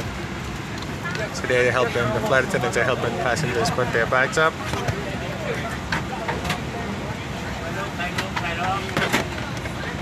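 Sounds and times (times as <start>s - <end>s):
distant passenger chatter: 0.0s - 10.0s
low hum of cabin air: 0.0s - 10.0s.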